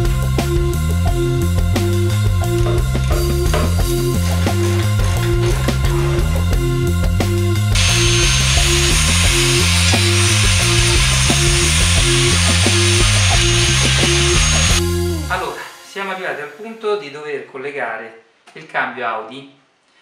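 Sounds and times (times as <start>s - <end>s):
rock music with guitar: 0.0s - 15.3s
angle grinder on steel: 7.8s - 14.8s.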